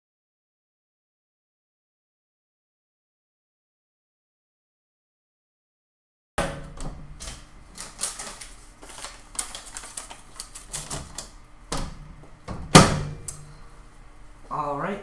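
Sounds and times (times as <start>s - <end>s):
microwave door shutting knock: 6.4s - 7.0s, 11.7s - 13.2s
microwave door clicks: 6.4s - 7.4s.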